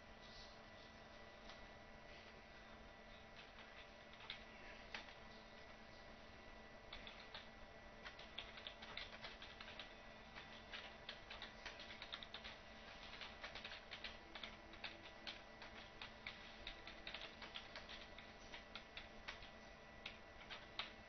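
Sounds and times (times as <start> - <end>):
low steady hum: 0.0 - 21.0
typing on computer keyboard: 3.4 - 5.2, 6.9 - 21.0.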